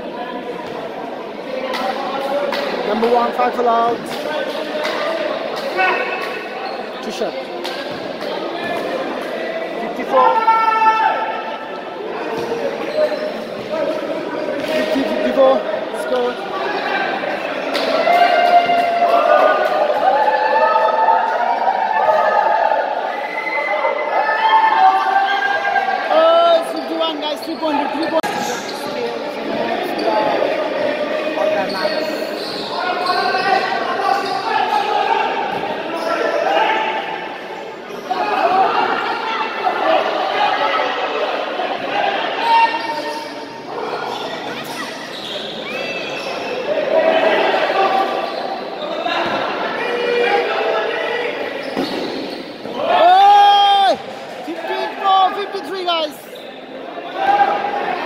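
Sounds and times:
people shouting: 10.0 - 11.6, 52.6 - 56.2.

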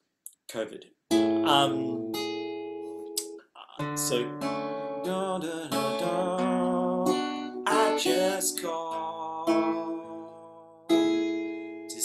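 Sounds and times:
acoustic guitar chord ringing: 1.1 - 3.2, 3.8 - 12.0
guitar chord strummed: 3.8 - 11.8.

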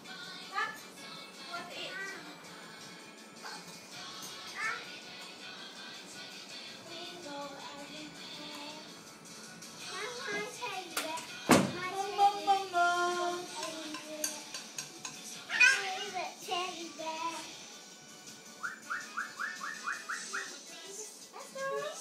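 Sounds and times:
music: 0.0 - 22.0
child singing and shouting: 0.4 - 2.4, 4.5 - 5.0, 9.9 - 14.5, 15.4 - 17.5, 20.1 - 22.0
loud thump: 11.5 - 11.8.

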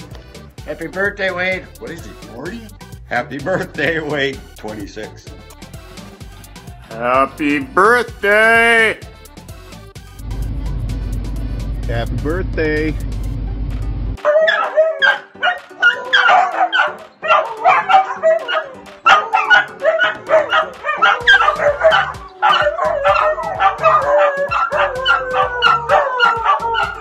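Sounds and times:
dogs barking: 14.2 - 27.0
dogs howling: 14.2 - 27.0.

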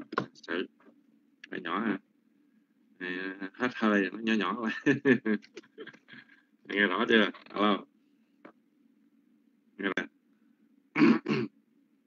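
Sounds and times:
person clearing throat: 11.0 - 11.6.

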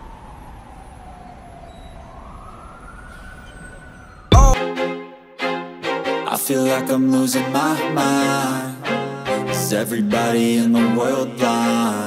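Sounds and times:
siren wailing: 0.0 - 4.6.

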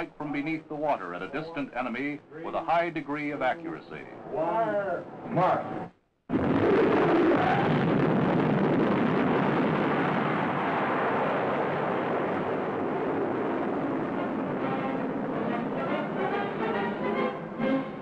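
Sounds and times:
orchestral music with brass: 14.2 - 18.0.

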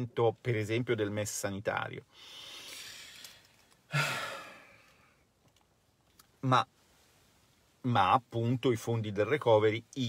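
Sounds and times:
man inhaling: 2.1 - 5.2
man sighing: 2.3 - 5.0.

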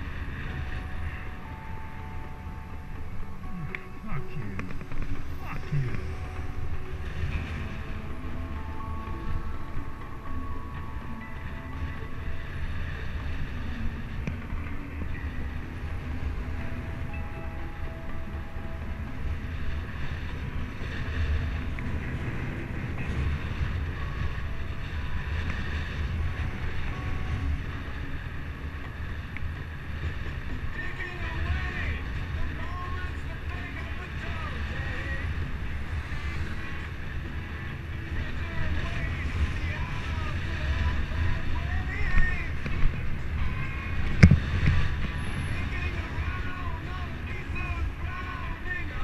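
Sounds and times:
wind buffeting microphone: 0.0 - 49.0.

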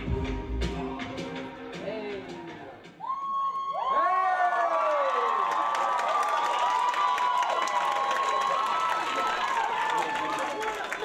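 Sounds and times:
audience screaming and cheering: 0.0 - 11.0.

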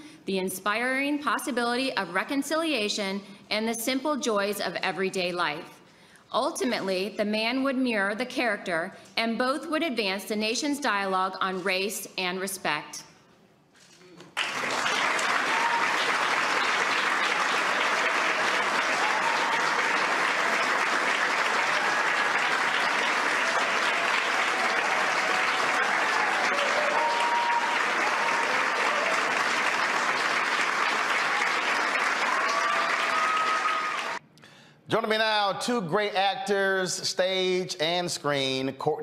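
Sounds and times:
audience applauding: 14.3 - 34.2.

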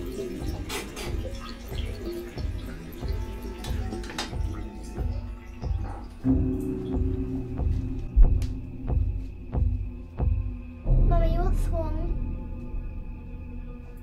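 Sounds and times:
water dripping: 0.0 - 10.9
low droning hum: 4.6 - 14.0.

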